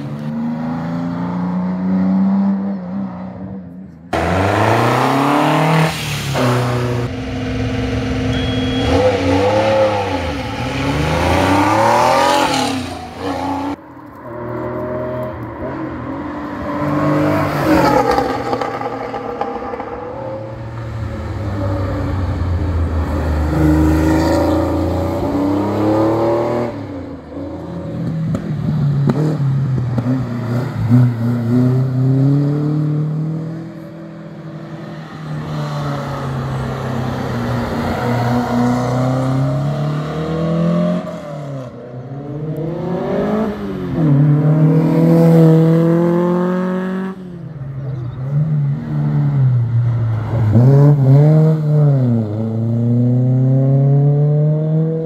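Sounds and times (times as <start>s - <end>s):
race cars accelerating: 0.0s - 55.0s.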